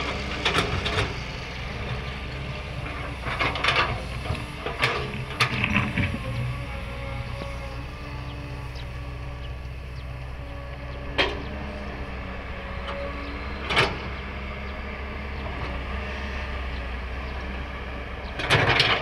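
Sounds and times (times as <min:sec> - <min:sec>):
excavator diesel engine running: 0:00.0 - 0:19.0.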